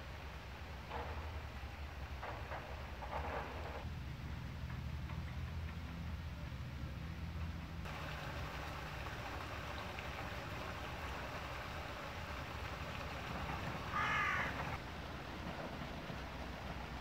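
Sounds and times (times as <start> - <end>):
running brook water: 7.8 - 15.4
crow cawing: 13.8 - 14.8.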